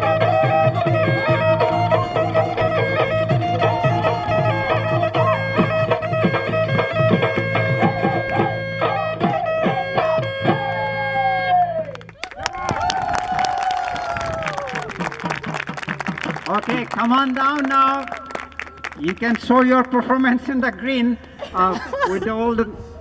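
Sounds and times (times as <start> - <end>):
folk music with drums and singing: 0.0 - 11.0.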